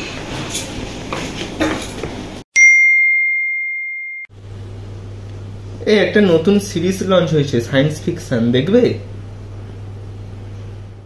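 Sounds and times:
bell ding: 2.6s - 4.3s.

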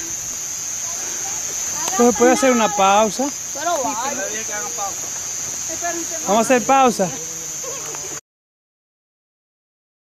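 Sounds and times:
night insects droning: 0.0s - 8.2s.

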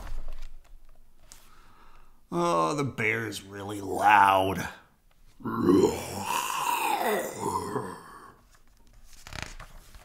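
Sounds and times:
person imitating bear roar: 5.4s - 8.4s.

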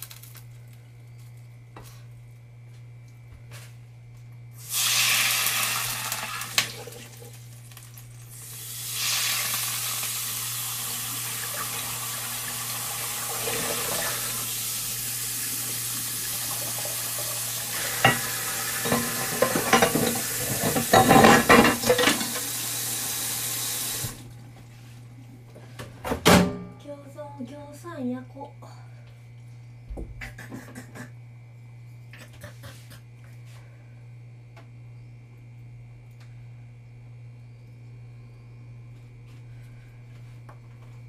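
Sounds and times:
food sizzling in a frying pan: 4.6s - 24.2s
dishes and utensils clinking: 18.0s - 22.5s.

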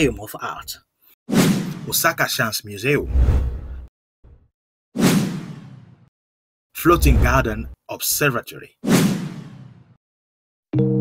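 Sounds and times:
whoosh transition effect: 3.1s - 3.8s.

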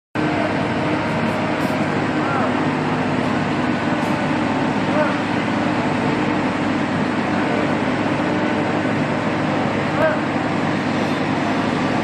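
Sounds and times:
crane diesel engines droning: 0.2s - 12.0s.

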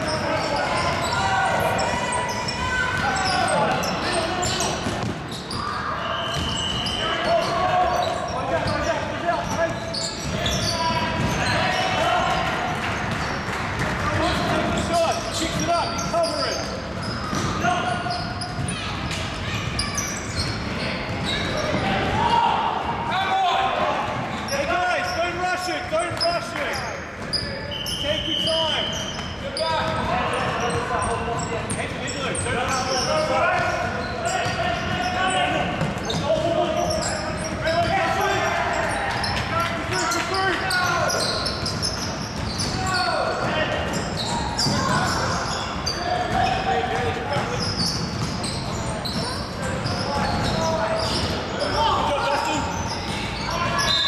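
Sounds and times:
sneakers squeaking: 0.0s - 23.0s, 23.6s - 54.0s
players calling: 0.0s - 54.0s
basketball bouncing on wooden court: 4.7s - 5.6s, 9.4s - 11.5s, 17.0s - 17.6s, 46.2s - 50.6s.

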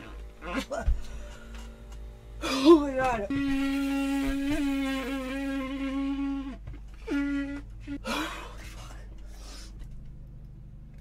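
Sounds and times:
bugle horn note: 3.3s - 8.4s.

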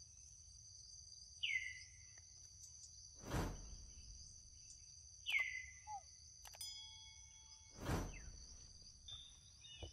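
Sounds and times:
high-pitched insect chorus: 0.0s - 9.9s.

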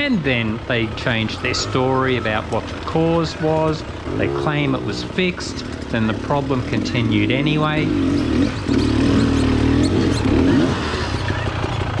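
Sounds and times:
dirt bike engine running: 0.0s - 12.0s.

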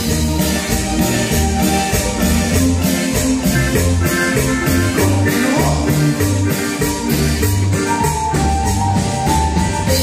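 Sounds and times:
live band playing dance music: 0.0s - 10.0s
stepping bass line: 0.0s - 10.0s.

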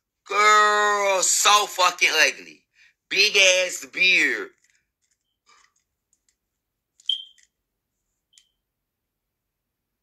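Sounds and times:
brief high beep-like ring: 7.1s - 7.4s.

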